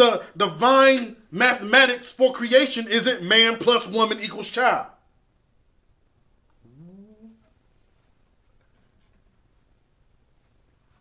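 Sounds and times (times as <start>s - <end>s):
short faint vocal sound: 6.6s - 7.5s.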